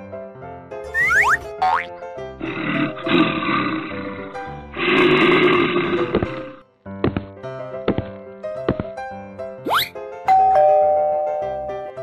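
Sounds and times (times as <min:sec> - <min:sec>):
bouncy cartoon music: 0:00.8 - 0:03.0, 0:07.0 - 0:12.0
cartoon bear roars: 0:02.4 - 0:06.6.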